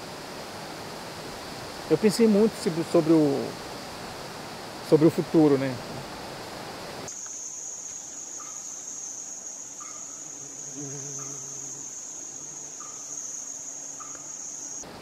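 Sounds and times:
high-pitched insect drone: 6.8 - 14.9.

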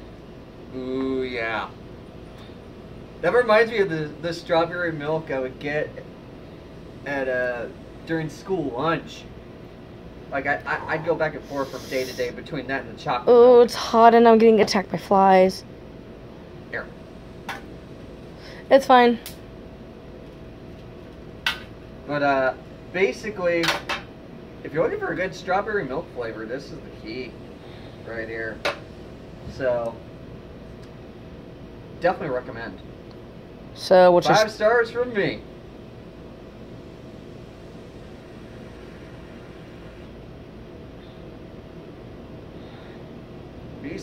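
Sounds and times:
background hiss: 0.0 - 12.6, 33.9 - 44.0
faint constant hum: 0.0 - 44.0
low steady background noise: 0.0 - 44.0.

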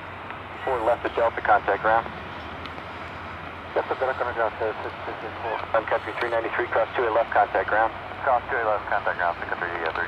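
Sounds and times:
voice over radio: 0.6 - 2.1, 3.8 - 10.0
radio static: 3.8 - 10.0.

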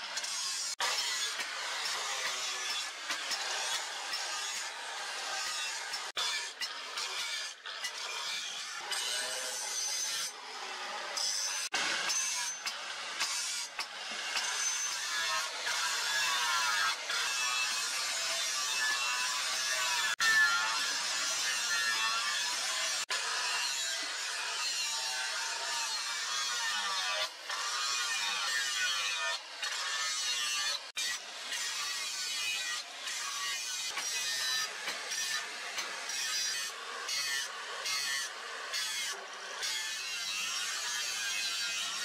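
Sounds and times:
angle grinder grinding steel: 0.0 - 42.0.

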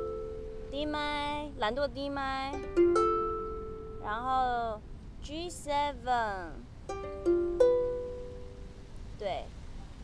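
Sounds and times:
ukulele chord strummed: 0.0 - 1.4, 2.5 - 4.4, 6.8 - 8.9.

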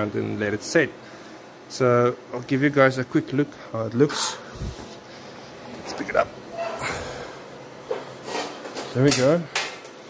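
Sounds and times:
man speaking: 1.7 - 4.5, 5.8 - 6.4.

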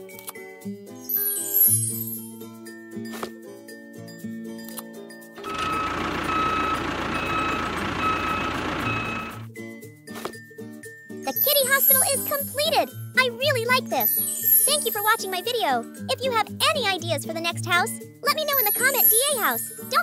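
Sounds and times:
background music: 0.0 - 20.0
short beeps: 5.4 - 9.4.

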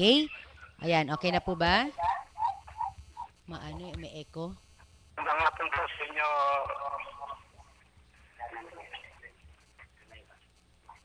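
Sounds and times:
person speaking: 0.0 - 4.6, 5.2 - 11.0.

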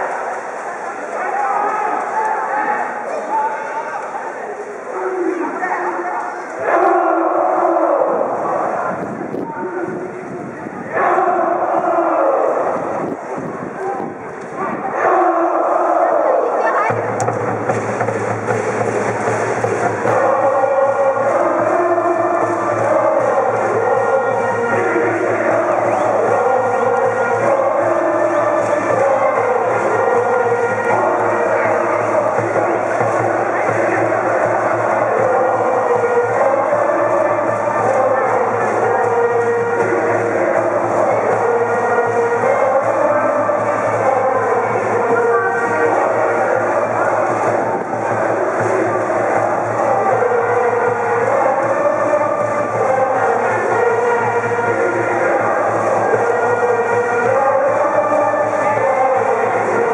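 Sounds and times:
students singing and shouting: 0.0 - 59.9
brass band playing: 15.2 - 59.9.

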